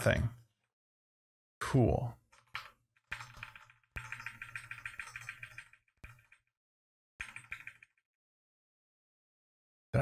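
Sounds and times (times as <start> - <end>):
computer keyboard clicking: 2.4 - 6.4, 7.2 - 8.0.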